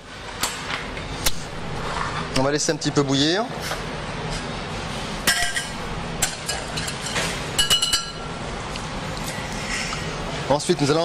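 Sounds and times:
kitchen background noise: 0.0s - 11.0s
kitchenware clinking: 5.3s - 8.4s.

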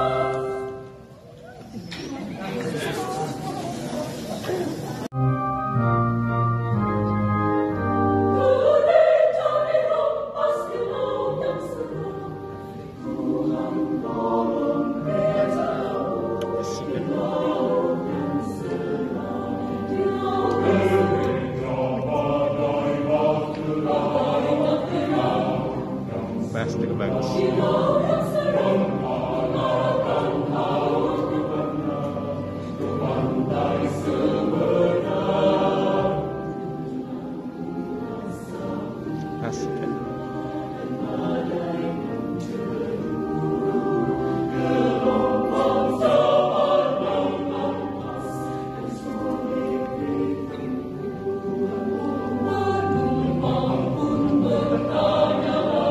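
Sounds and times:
mixed choir singing: 0.0s - 5.1s, 7.8s - 55.9s
keyboard accompaniment: 4.5s - 55.9s.

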